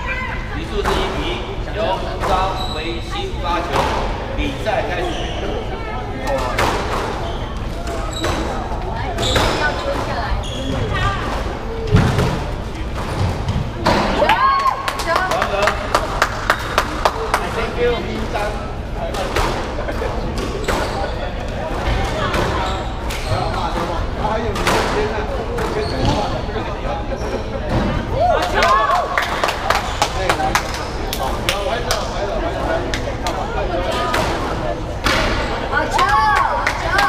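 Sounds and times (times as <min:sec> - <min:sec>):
shoes squeaking on wooden floor: 0:02.2 - 0:03.1, 0:05.0 - 0:05.6, 0:07.2 - 0:11.7, 0:25.6 - 0:26.4.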